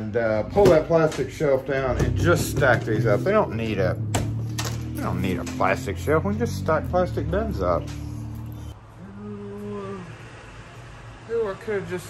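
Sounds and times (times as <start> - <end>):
man humming low note: 2.2 - 10.0.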